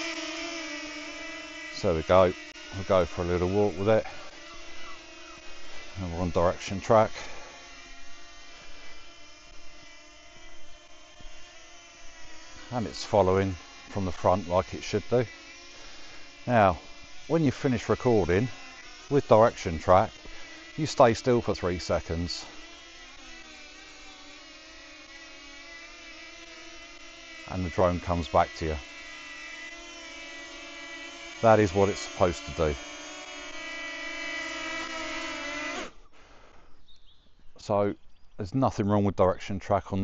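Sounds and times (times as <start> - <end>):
drone propellers buzzing: 0.0 - 36.7.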